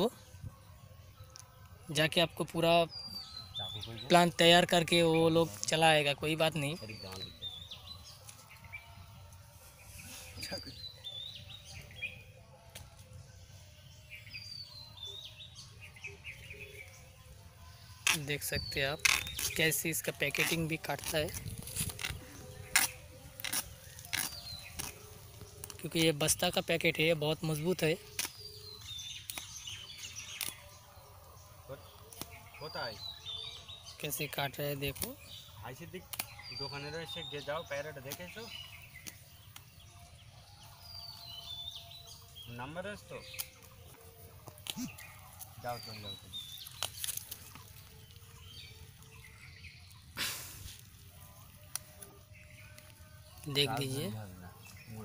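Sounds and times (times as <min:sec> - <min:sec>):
birds chirping: 0:00.0 - 0:55.0.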